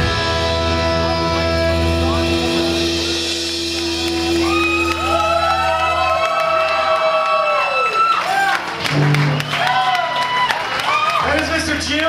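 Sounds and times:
low bass note: 0:00.0 - 0:06.2
electric guitar chord: 0:00.0 - 0:06.3.

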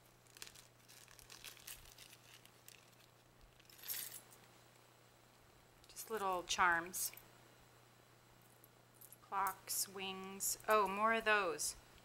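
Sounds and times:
package being opened: 0:00.0 - 0:04.1
small metal charms clinking: 0:00.4 - 0:04.2.

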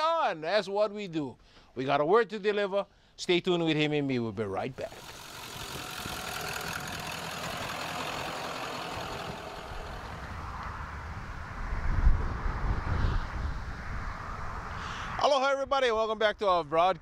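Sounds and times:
truck driving by: 0:04.8 - 0:11.6
wind buffeting microphone: 0:09.0 - 0:15.2.

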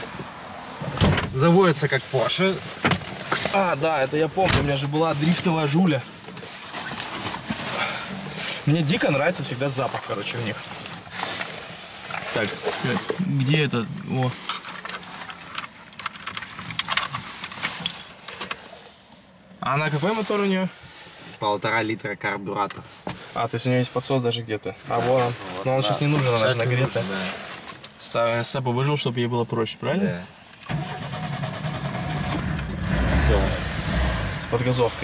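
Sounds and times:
starter motor cranking: 0:30.7 - 0:33.2
car engine running: 0:31.0 - 0:35.0.

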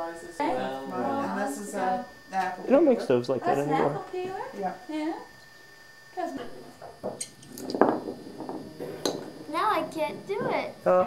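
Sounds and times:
wooden top clicking on floor: 0:07.0 - 0:09.4
girl's voice: 0:09.5 - 0:10.8.

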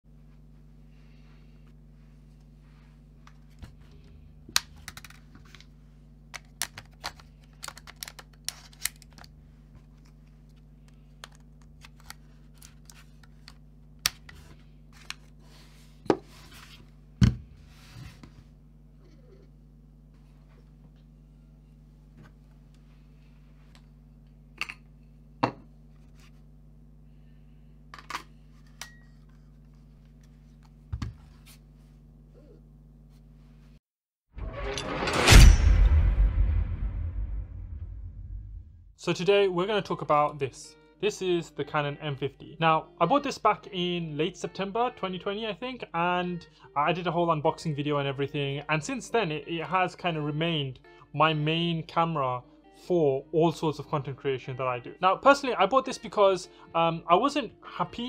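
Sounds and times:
steady low hum: 0:00.1 - 0:33.8, 0:34.4 - 0:38.9.

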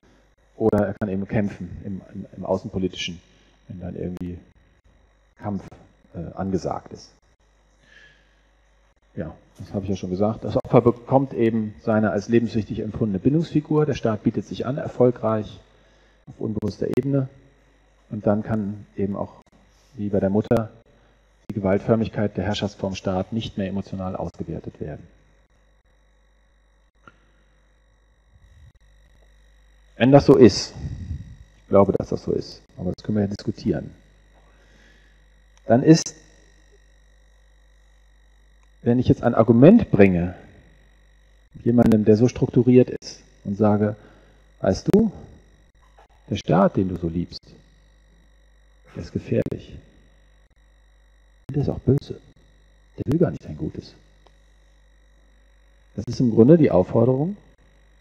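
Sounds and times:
faint electrical hum: 0:00.0 - 0:58.0.

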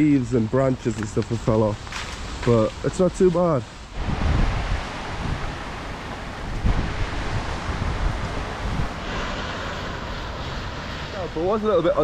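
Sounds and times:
rain hiss: 0:00.0 - 0:12.0
wind buffeting microphone: 0:03.9 - 0:10.8.

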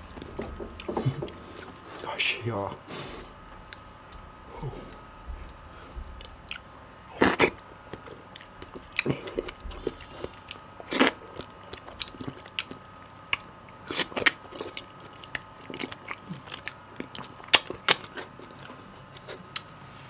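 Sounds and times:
mouth smacks and chewing: 0:03.4 - 0:19.7.

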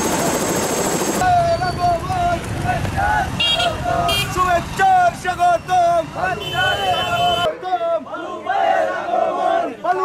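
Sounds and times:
crowd chanting in unison: 0:02.6 - 0:04.1, 0:06.2 - 0:10.0.

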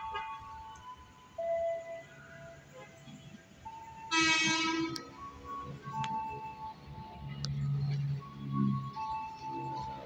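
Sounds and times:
low train hum: 0:00.0 - 0:10.0
train horn blast: 0:04.1 - 0:05.0.

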